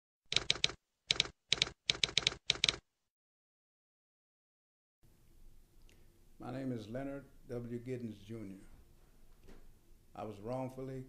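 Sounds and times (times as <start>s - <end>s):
typewriter key strikes: 0.3s - 2.8s.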